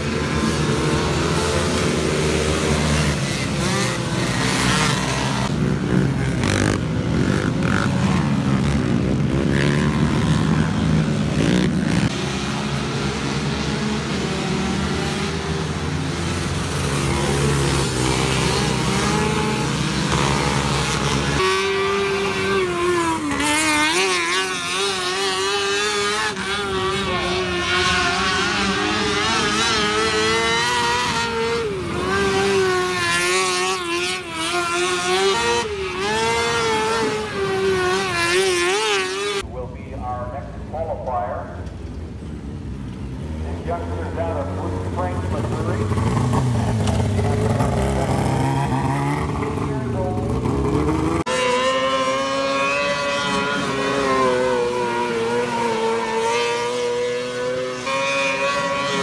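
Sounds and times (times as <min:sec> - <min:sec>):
small racing engines buzzing: 0:00.0 - 0:39.5, 0:40.3 - 0:59.0
quad engines droning and revving: 0:00.0 - 0:59.0.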